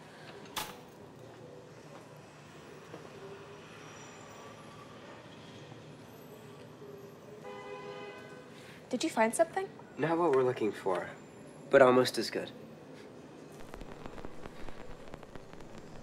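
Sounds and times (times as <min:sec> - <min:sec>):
low room ambience: 0:12.9 - 0:16.0.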